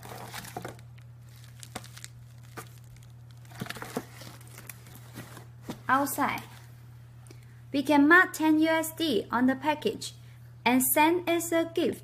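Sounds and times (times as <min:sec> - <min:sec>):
bubble wrap crinkling: 0:00.0 - 0:06.7
cardboard box rustling and tapping: 0:03.5 - 0:05.9.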